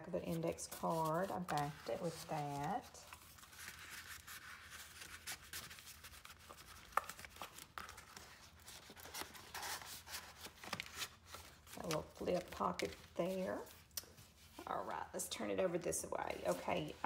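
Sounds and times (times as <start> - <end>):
paper rustling: 0.2 - 14.6
light scraping of pages: 0.2 - 14.7.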